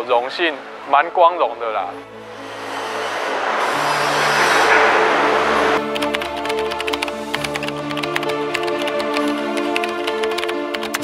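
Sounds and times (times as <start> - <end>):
rising whoosh: 2.1 - 5.9.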